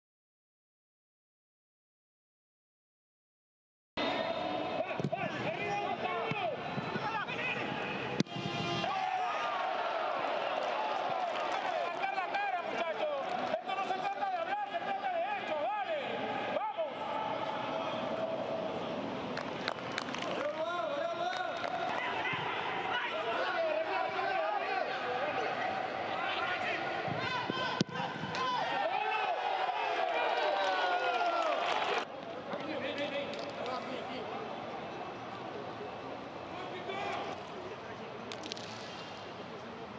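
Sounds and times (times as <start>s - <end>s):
excited commentator talking: 11.4s - 17.0s.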